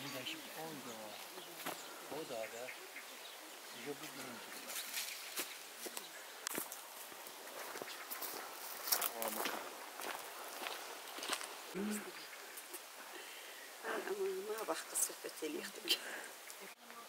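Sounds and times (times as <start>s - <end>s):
footsteps crunching on stony path: 1.0s - 2.4s, 4.0s - 11.8s
faint voices: 11.7s - 17.0s.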